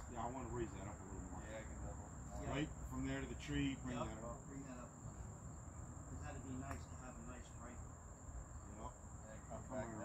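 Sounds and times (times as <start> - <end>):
distant men talking: 0.0 - 10.0.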